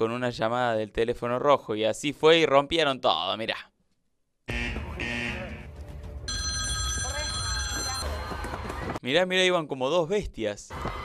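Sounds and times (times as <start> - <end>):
telephone ringing: 6.3 - 8.3.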